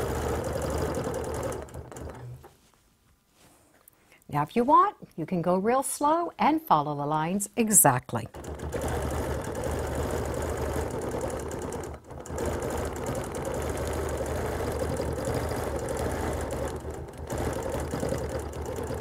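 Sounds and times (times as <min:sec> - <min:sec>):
quilting machine stitching: 0:00.0 - 0:02.5, 0:08.3 - 0:19.0.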